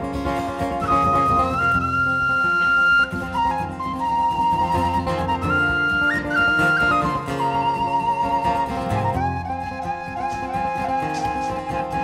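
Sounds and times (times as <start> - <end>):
acoustic guitar accompaniment: 0.0 - 12.0
tin whistle long high note: 0.8 - 12.0.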